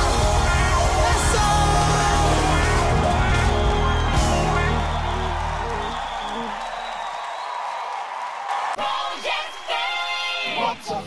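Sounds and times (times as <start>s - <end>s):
backing music with heavy bass: 0.0s - 6.5s
studio crowd cheering: 0.0s - 11.0s.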